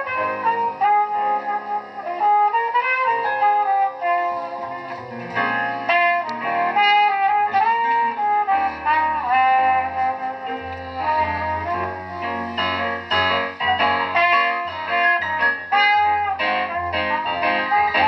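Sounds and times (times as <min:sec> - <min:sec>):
piano: 0:00.0 - 0:18.0
trumpet solo: 0:00.0 - 0:18.0
upright double bass: 0:00.0 - 0:18.0.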